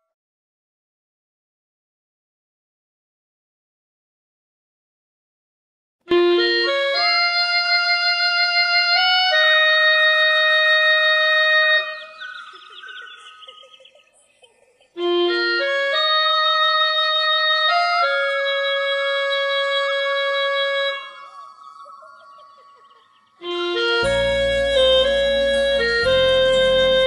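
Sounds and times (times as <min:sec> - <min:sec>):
electronic keyboard melody: 0:06.1 - 0:13.9, 0:14.9 - 0:27.0.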